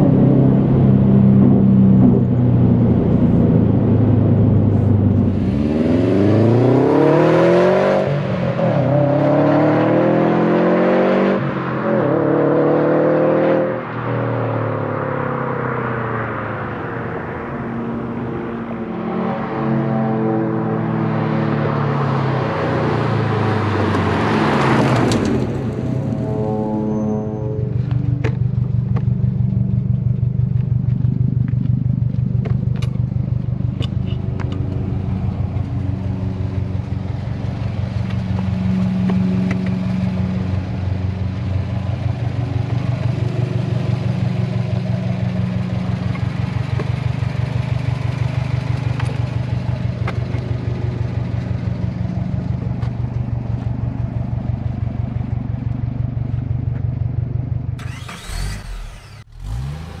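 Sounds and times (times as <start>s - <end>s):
pitch sweeping sound effect: 25.8s - 27.9s
car engine idling: 27.7s - 60.0s.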